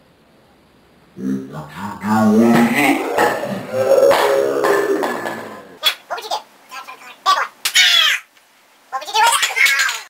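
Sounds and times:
people laughing: 0:02.5 - 0:05.8.

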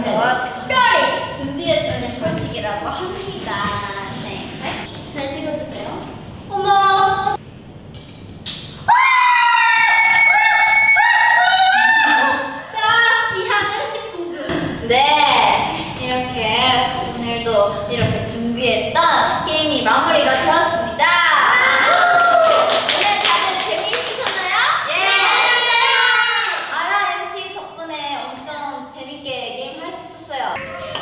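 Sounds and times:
young women's voices: 0:00.0 - 0:07.4, 0:11.4 - 0:31.0
young women shrieking: 0:08.9 - 0:12.8
people clapping hands: 0:21.9 - 0:24.6, 0:30.6 - 0:31.0.

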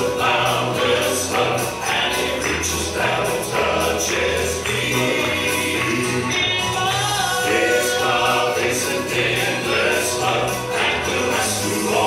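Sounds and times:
male quartet singing in harmony: 0:00.0 - 0:12.0.

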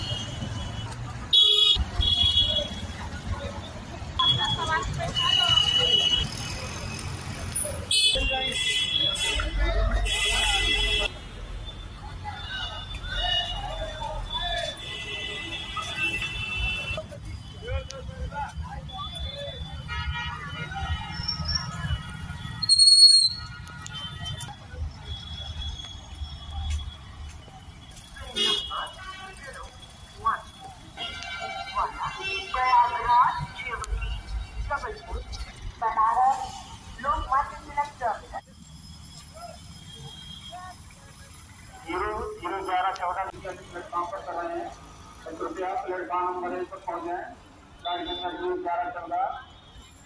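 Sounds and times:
road traffic: 0:00.0 - 0:50.0
people's voices: 0:01.9 - 0:22.5
vehicle horn toot: 0:28.3 - 0:29.3.

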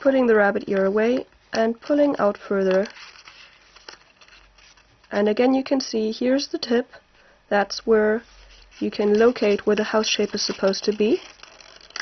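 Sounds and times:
paper rustling and crackling: 0:00.7 - 0:05.2, 0:08.2 - 0:12.0.

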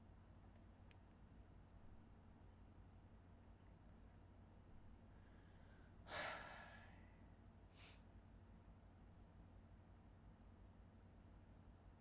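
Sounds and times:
short quick breath: 0:05.2 - 0:07.1, 0:07.7 - 0:08.1
man's breathy stifled exhale: 0:05.3 - 0:07.0.

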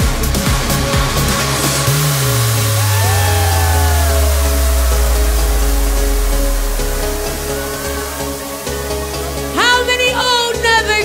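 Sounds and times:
deep bass note sliding down: 0:00.0 - 0:08.9
synth tones gliding downward: 0:01.6 - 0:09.6.

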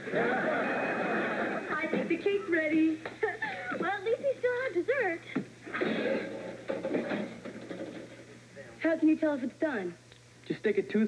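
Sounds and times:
studio audience laughter: 0:00.0 - 0:01.8.

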